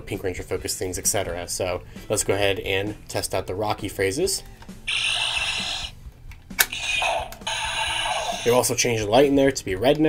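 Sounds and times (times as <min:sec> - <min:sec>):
toy electronic sound effect: 0:04.9 - 0:06.0, 0:06.6 - 0:08.6
plastic click of toy: 0:06.3 - 0:07.5.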